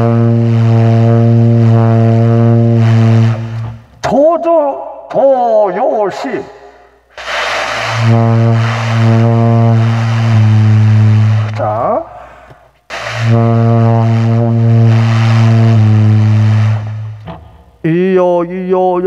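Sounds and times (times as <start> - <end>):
low saxophone notes: 0.0 - 3.9, 8.0 - 11.9, 13.2 - 17.5.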